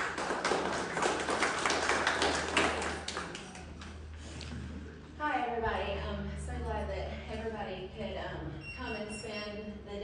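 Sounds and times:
audience applauding: 0.0 - 4.0.

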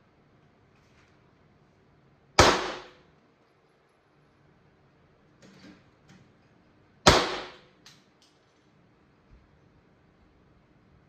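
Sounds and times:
handgun shot: 2.4 - 3.0, 7.1 - 7.7.

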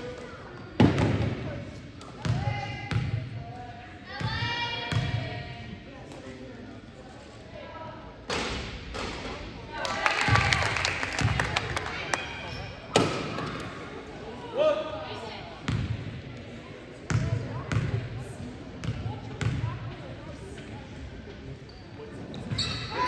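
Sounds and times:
voices echoing in gym: 0.0 - 23.0.

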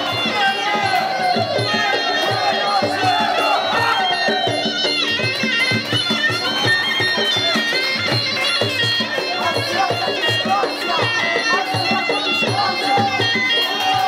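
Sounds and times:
hand drum beats: 0.0 - 14.0.

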